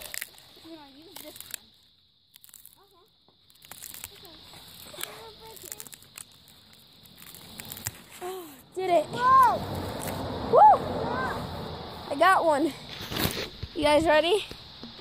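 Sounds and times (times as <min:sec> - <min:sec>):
distant children calling out: 0:08.1 - 0:12.8.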